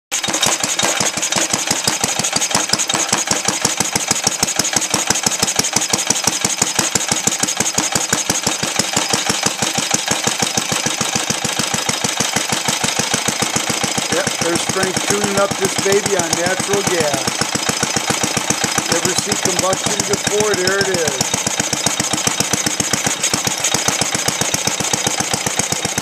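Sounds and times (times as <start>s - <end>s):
single-cylinder engine running: 0.1s - 26.0s.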